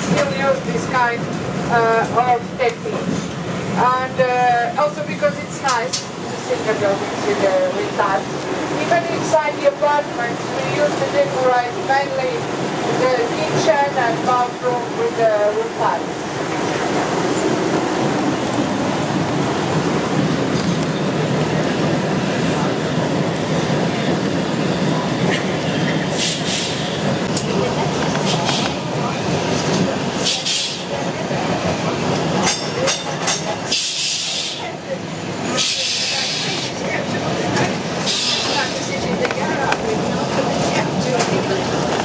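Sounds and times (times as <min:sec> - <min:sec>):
tram rumbling on rails: 0:00.0 - 0:42.0.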